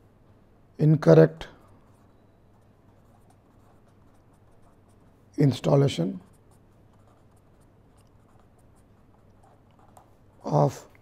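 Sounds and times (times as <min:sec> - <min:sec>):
pen scratching on paper: 0:01.5 - 0:05.2, 0:06.2 - 0:10.6.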